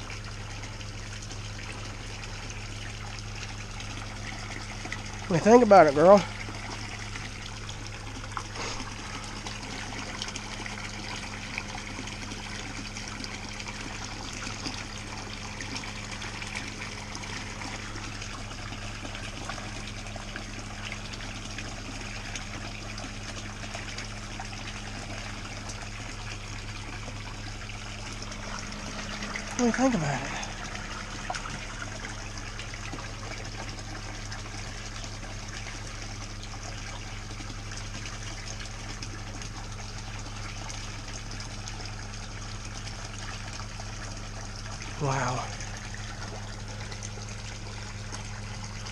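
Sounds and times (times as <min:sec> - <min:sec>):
low hum of pond pump: 0:00.0 - 0:48.9
water splashing from pipe into pool: 0:00.0 - 0:48.9.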